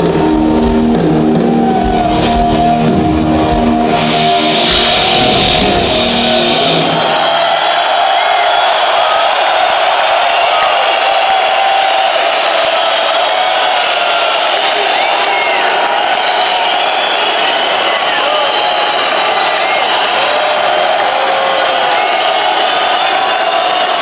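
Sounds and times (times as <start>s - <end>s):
crowd cheering and shouting: 0.0s - 24.0s.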